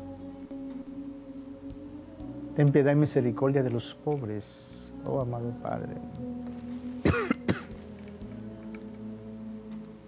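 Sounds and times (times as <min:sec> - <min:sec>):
soft background music: 0:00.0 - 0:10.0
man coughing: 0:07.0 - 0:07.7.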